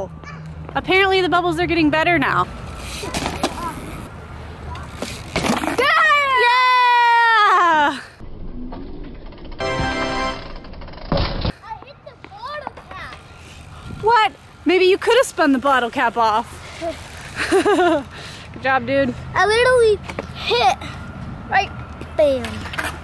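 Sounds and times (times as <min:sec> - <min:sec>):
child shouting: 0:00.2 - 0:00.5, 0:05.8 - 0:07.8.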